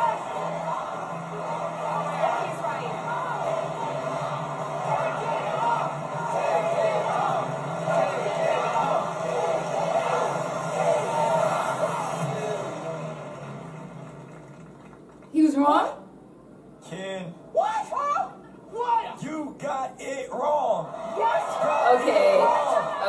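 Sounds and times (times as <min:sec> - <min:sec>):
excited voices shouting: 0:00.0 - 0:12.4, 0:20.9 - 0:23.0
game show music: 0:00.0 - 0:14.9.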